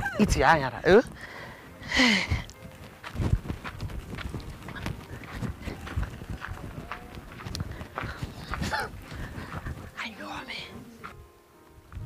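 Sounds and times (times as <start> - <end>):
footsteps on leafy dirt: 2.5 - 11.2.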